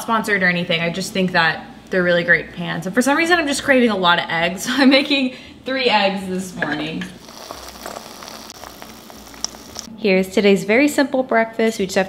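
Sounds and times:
eggs sizzling in a pan: 7.2s - 9.9s.

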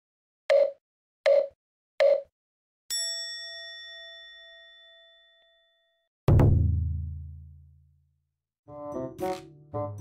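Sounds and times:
bright bell ding: 2.9s - 6.0s.

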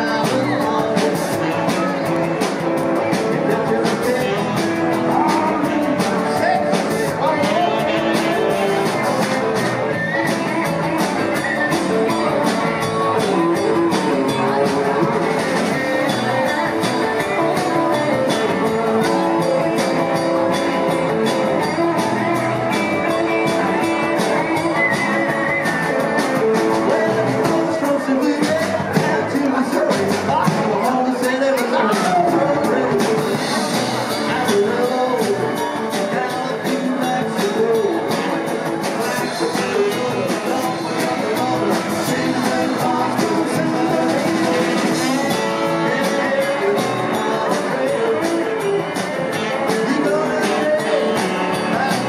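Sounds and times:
live rock band playing: 0.0s - 52.0s.

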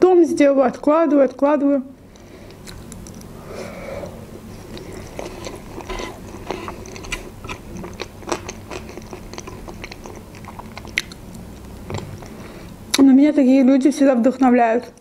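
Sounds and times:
close chewing and mouth sounds: 0.8s - 3.4s, 4.4s - 13.1s.

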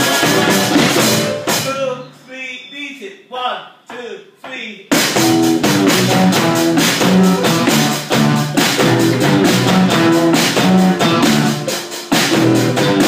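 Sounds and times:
electric guitar riff: 0.0s - 1.7s, 5.0s - 13.0s
steady drum beat: 0.0s - 2.0s, 3.9s - 13.0s
count-in: 0.0s - 13.0s.

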